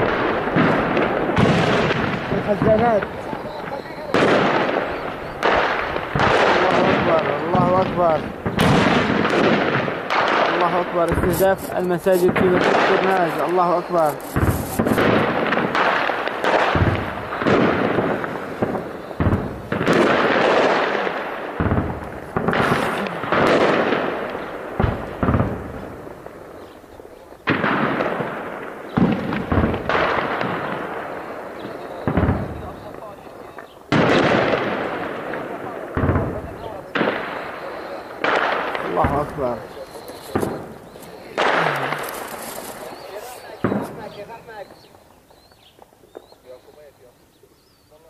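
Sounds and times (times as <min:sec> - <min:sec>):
heavy gunfire: 0:00.0 - 0:26.8, 0:27.4 - 0:44.6
explosions with long echo: 0:00.0 - 0:45.1.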